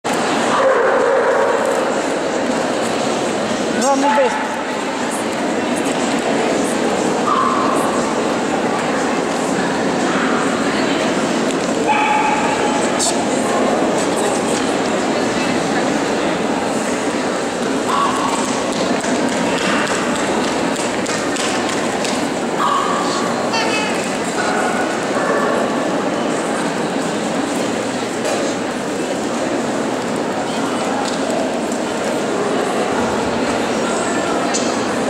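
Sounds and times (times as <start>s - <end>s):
murmur of exhibition hall crowd: 0.0s - 35.0s.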